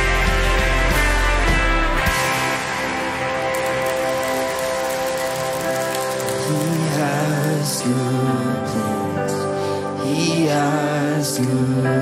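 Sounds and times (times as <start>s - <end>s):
person singing: 3.6s - 12.0s.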